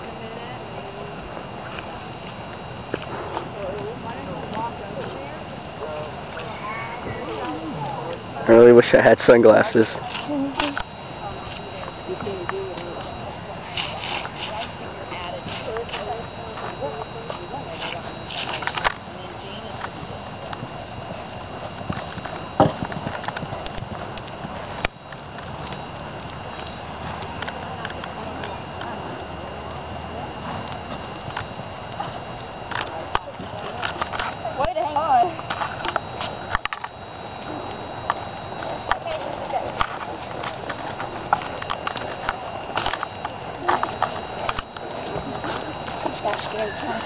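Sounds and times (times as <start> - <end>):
people talking: 0.0 - 1.9, 3.0 - 20.8, 25.9 - 31.4, 32.0 - 47.0.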